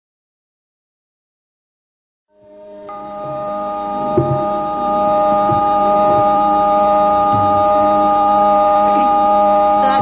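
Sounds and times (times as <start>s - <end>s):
harmonium sustained chord: 2.3s - 10.0s.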